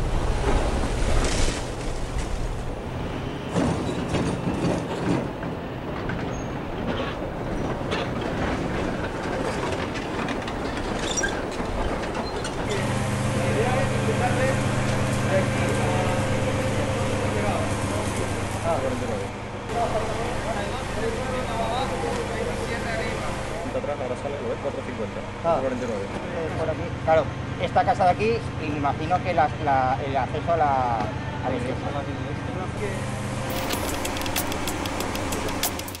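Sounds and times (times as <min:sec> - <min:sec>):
excavator diesel engine humming: 0:02.0 - 0:27.6
people talking: 0:12.7 - 0:34.5
sharp irregular clicks: 0:33.5 - 0:36.0.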